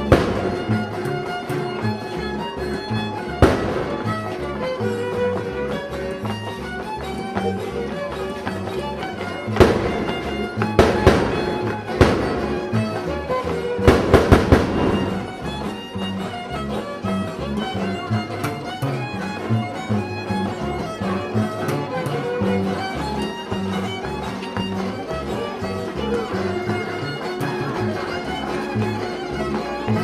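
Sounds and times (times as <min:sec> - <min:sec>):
string band playing: 0:00.0 - 0:30.0
sharp bangs: 0:00.1 - 0:00.9, 0:03.4 - 0:04.3, 0:09.6 - 0:12.9, 0:13.6 - 0:15.5.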